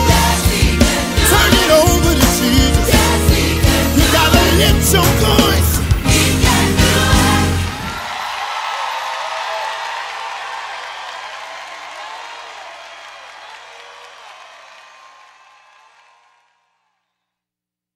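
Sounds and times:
audience applauding and cheering: 0.0s - 17.0s
audience shouts: 7.6s - 16.5s.

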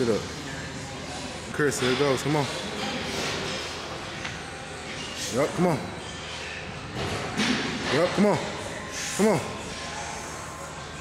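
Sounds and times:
large gym room background noise: 0.0s - 11.0s.

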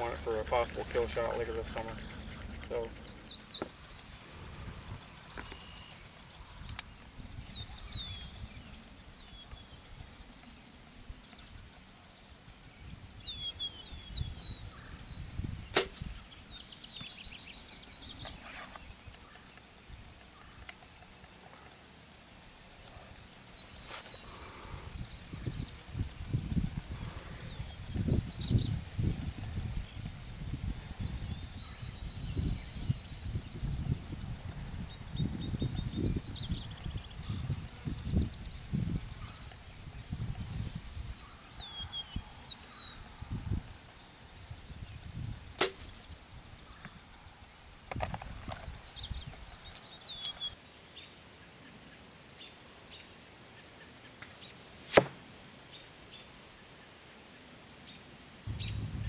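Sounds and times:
birds singing trilled song: 0.0s - 21.8s, 22.8s - 54.6s, 57.8s - 59.0s
bow shot snap: 15.7s - 16.2s, 45.6s - 46.0s, 54.2s - 55.3s
low rumbling on microphone: 58.5s - 59.0s.

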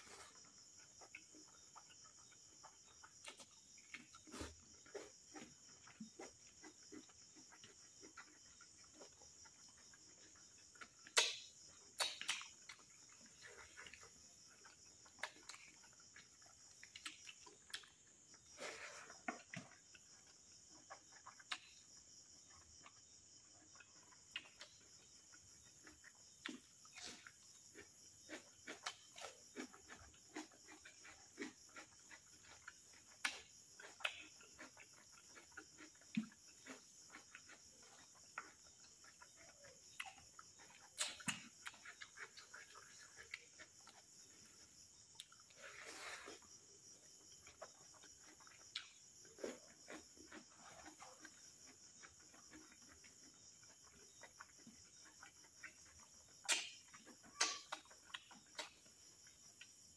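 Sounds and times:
crickets chirring: 0.0s - 59.9s
eating by hand: 0.0s - 59.9s.

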